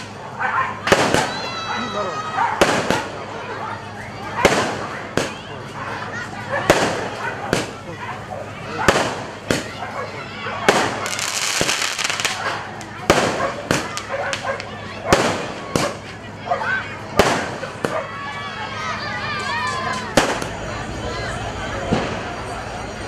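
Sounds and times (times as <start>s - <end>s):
fireworks bangs: 0.0s - 3.4s, 4.2s - 16.2s, 17.0s - 18.2s, 20.0s - 20.7s, 21.8s - 22.6s
fireworks crackling: 0.0s - 18.5s, 19.6s - 23.0s.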